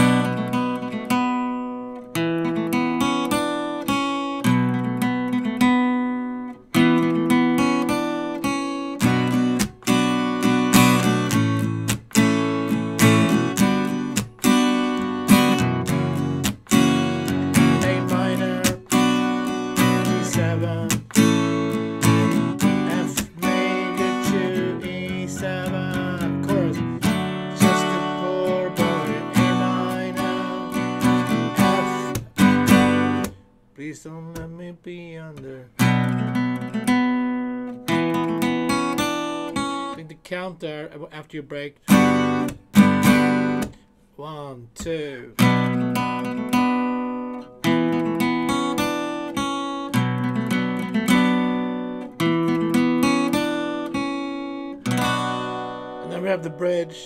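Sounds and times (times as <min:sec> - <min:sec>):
acoustic guitar strumming chords: 0:00.0 - 0:57.0.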